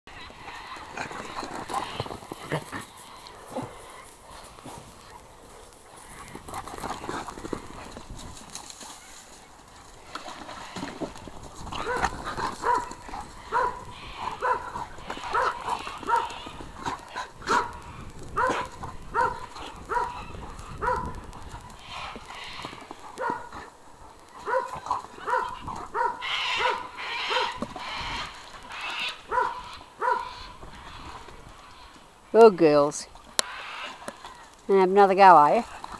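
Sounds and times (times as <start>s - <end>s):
dogs scuffling: 0.2s - 35.9s
dog play barks: 11.7s - 16.7s, 17.4s - 22.5s, 24.4s - 27.7s, 29.3s - 30.5s.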